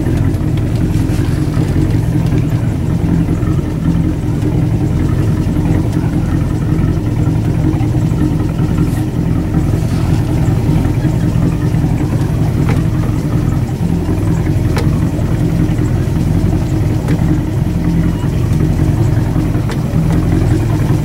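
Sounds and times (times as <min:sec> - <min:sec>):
motorboat engine droning: 0:00.0 - 0:21.0.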